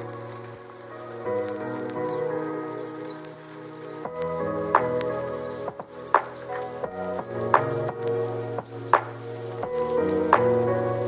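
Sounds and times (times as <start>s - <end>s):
calm instrumental chill music: 0.0s - 11.0s.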